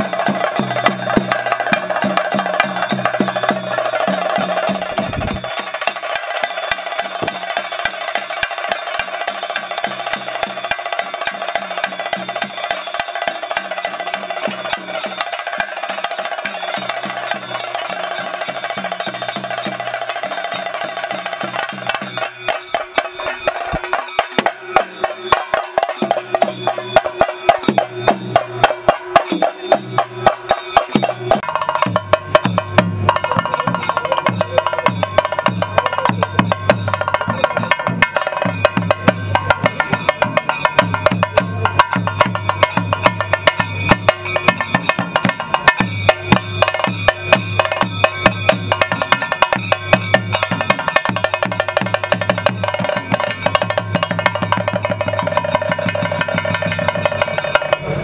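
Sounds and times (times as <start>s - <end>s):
deeper drum: 0.0s - 6.0s, 6.7s - 7.8s, 21.1s - 58.0s
drums beaten rapidly: 0.0s - 58.0s
steady ringing tones: 0.0s - 58.0s.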